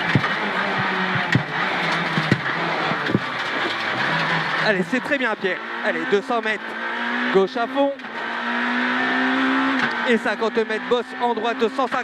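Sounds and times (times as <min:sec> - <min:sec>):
car engine at high revs: 0:00.0 - 0:12.0.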